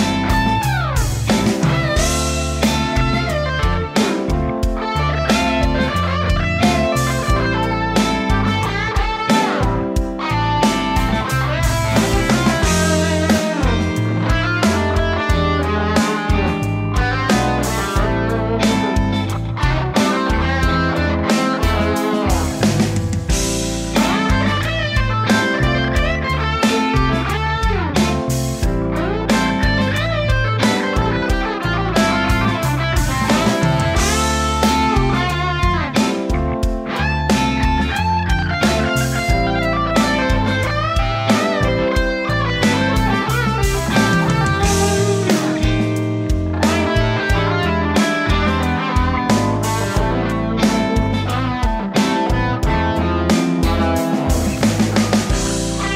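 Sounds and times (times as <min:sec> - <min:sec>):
blues backing track: 0:00.0 - 0:55.9
overdriven electric guitar solo: 0:00.0 - 0:55.9.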